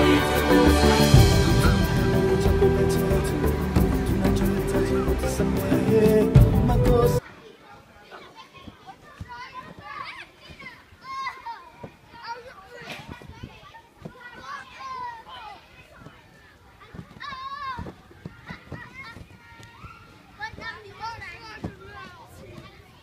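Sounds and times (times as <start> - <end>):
children shouting and squealing: 0.0 - 6.2, 7.2 - 23.0.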